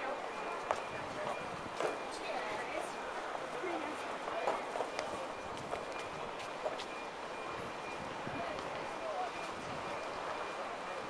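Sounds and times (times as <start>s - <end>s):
indistinct distant voices: 0.0s - 11.0s
outdoor background noise: 0.0s - 11.0s
footsteps on pavement: 0.5s - 7.0s.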